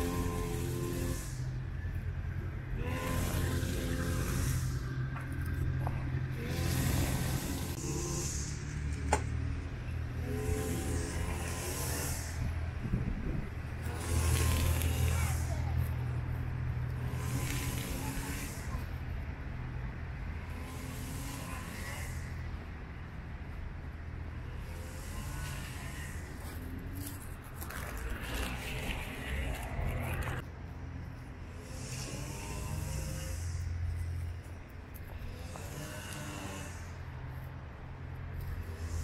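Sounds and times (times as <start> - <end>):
cars passing: 0.0 - 39.0
road traffic rumble: 0.0 - 39.0
indistinct voices: 2.3 - 19.6.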